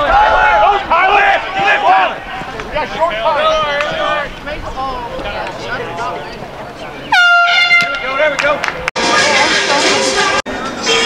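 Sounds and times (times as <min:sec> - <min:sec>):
players shouting: 0:00.0 - 0:10.3
loud horn blast: 0:07.1 - 0:08.3.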